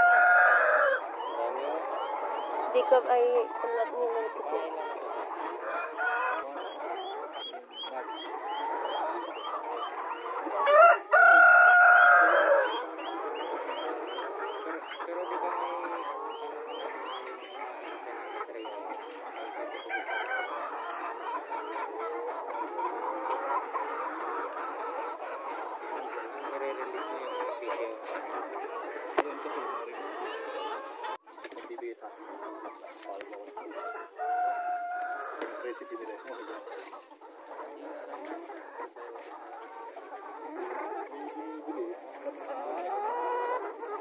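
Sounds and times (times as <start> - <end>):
rooster crowing: 0.0 - 1.0, 5.6 - 6.4, 10.6 - 12.8, 33.8 - 35.4
chickens clucking: 0.0 - 44.0.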